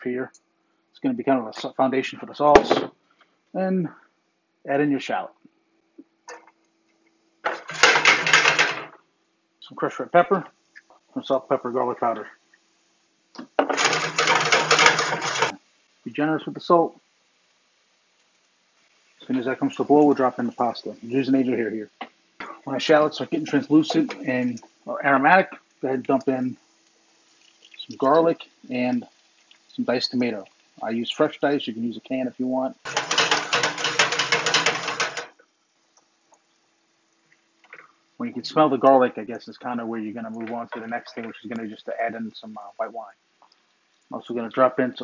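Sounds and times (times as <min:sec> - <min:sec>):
spice grinder crunching: 0:07.5 - 0:08.7, 0:13.6 - 0:15.6, 0:32.8 - 0:35.4.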